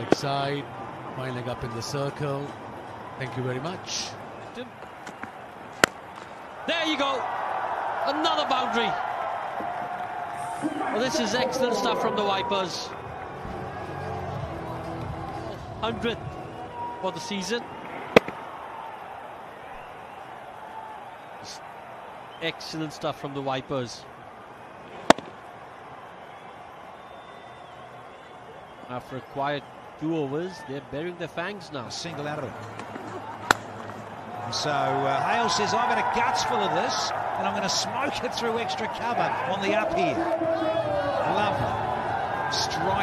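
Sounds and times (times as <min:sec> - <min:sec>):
cricket bat striking ball: 0:00.0 - 0:00.3, 0:04.8 - 0:06.3, 0:18.0 - 0:18.5, 0:25.0 - 0:25.4, 0:32.7 - 0:34.0
low stadium background noise: 0:00.0 - 0:43.0
steady background noise: 0:00.0 - 0:43.0.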